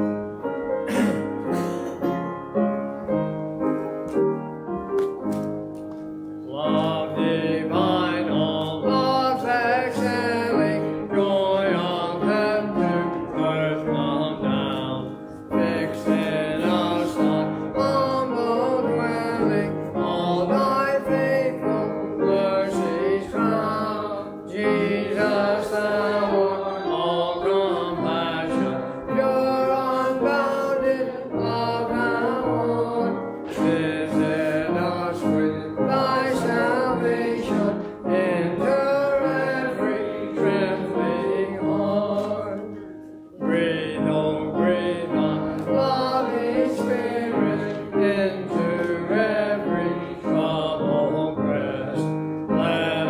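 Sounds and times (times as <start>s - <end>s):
instrumental accompaniment: 0.0s - 53.0s
piano playing hymn chords: 0.0s - 53.0s.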